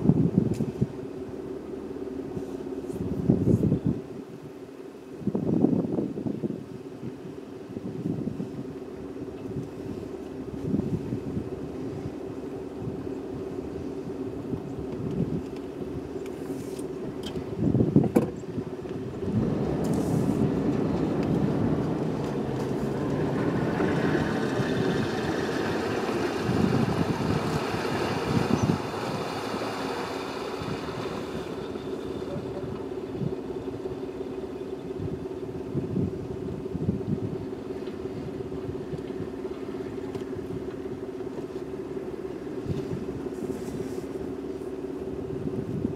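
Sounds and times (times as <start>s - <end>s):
vehicle engines idling: 0.0s - 5.2s, 6.8s - 45.9s
vehicle driving up: 14.5s - 44.7s.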